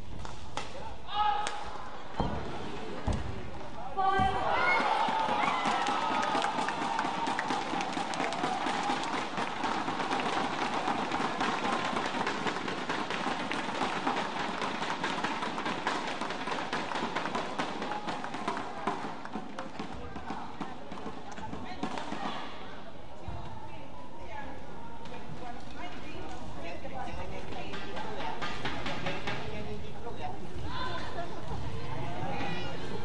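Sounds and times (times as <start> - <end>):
loud shout: 1.1 - 1.8, 4.0 - 9.2
crowd cheering and clapping: 4.3 - 19.4.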